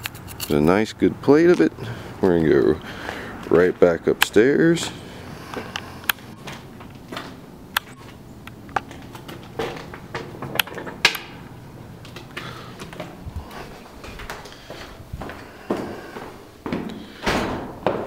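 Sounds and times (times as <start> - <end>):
footsteps: 4.8 - 18.0.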